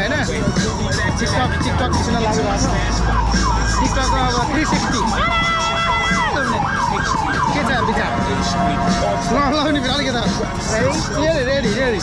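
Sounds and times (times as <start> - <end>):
emergency siren: 0.6 - 10.7.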